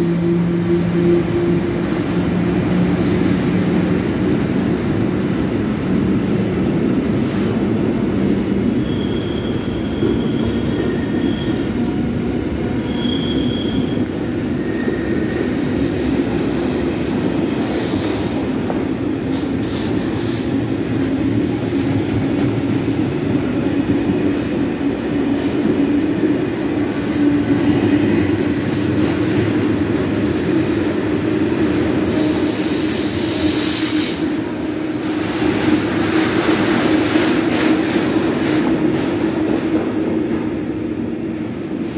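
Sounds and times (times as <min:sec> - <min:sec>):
train wheels rumbling on rail: 0:00.0 - 0:41.9
high-pitched wheel squeals: 0:08.8 - 0:11.8, 0:12.8 - 0:15.2.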